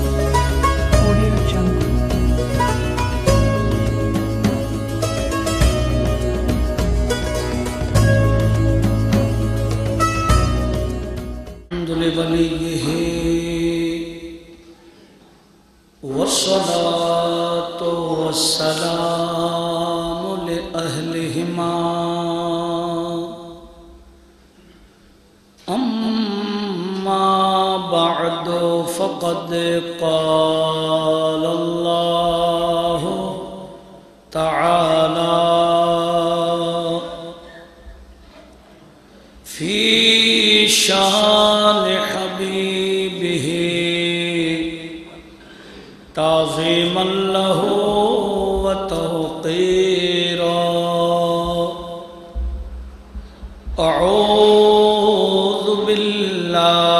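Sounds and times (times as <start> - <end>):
man chanting melodic recitation: 16.0 - 23.7, 25.7 - 37.5, 46.1 - 52.3, 53.7 - 56.9.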